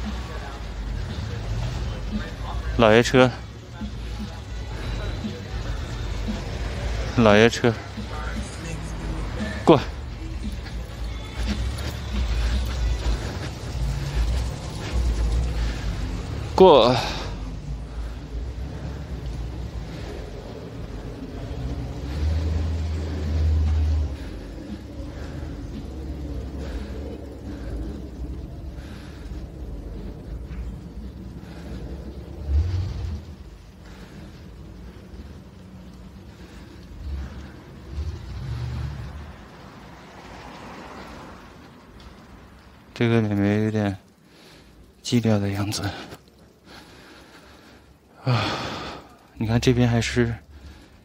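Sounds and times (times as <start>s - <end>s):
rumble of passing vehicles: 0.0s - 51.0s.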